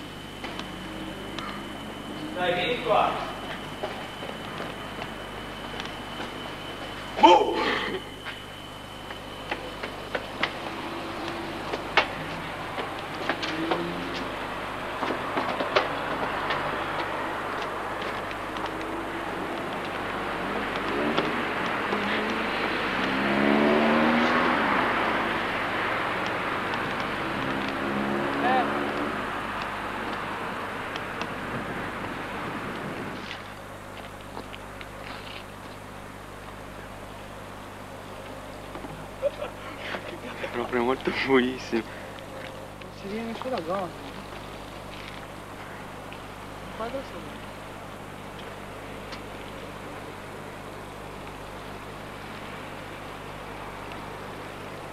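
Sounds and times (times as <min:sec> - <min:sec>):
motor vehicle passing: 0:00.0 - 0:03.6, 0:10.4 - 0:33.3.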